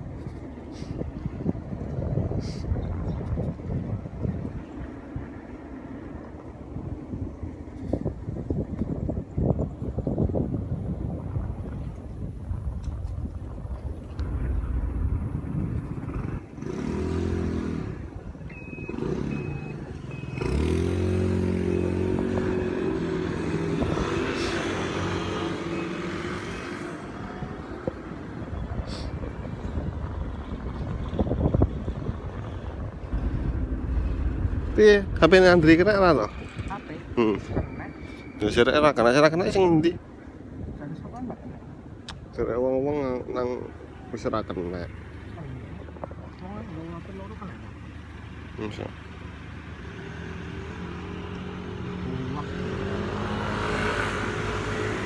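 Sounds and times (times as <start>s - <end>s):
wind rumble on microphone: 0.0s - 48.5s
motorbike engine: 14.2s - 37.9s.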